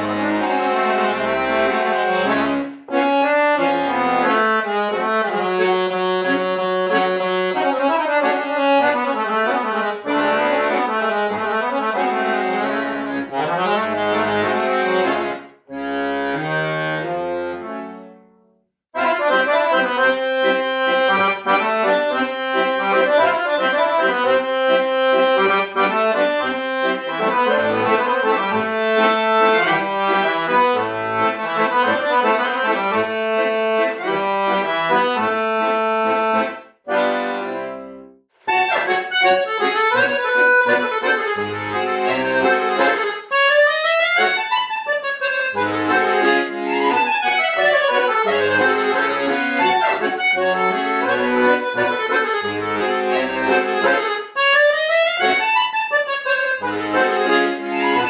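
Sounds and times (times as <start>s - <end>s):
piano accordion playing folk melody: 0.0s - 58.0s.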